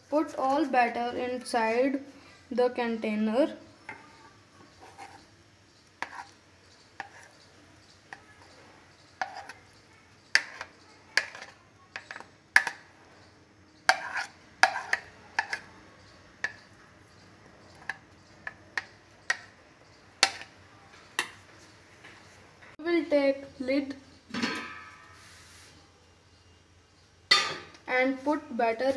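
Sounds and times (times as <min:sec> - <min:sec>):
spoon scraping ceramic plate: 0:04.7 - 0:05.3, 0:06.0 - 0:06.4, 0:07.0 - 0:07.4, 0:09.2 - 0:09.7, 0:10.3 - 0:12.8, 0:13.9 - 0:15.7.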